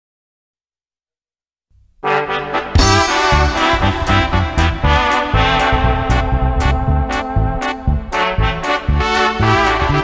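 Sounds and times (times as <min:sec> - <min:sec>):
faint low sound: 0:02.8 - 0:09.0.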